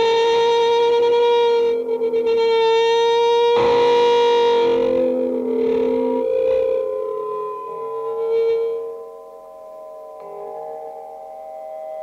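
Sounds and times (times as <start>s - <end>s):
electric guitar sustained notes: 0.0s - 12.0s.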